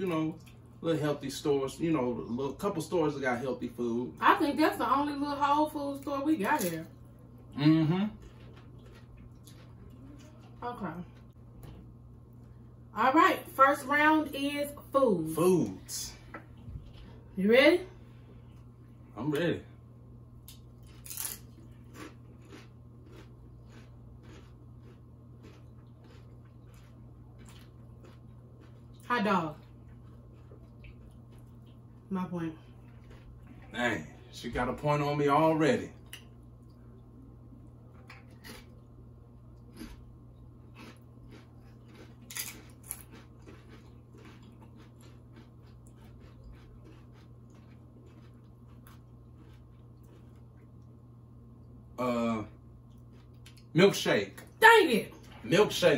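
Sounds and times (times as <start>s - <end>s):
steady low hum: 0.0s - 55.9s
tortilla chips being chewed: 5.9s - 12.6s, 20.4s - 32.1s, 32.7s - 34.4s, 35.9s - 51.0s, 52.7s - 54.0s.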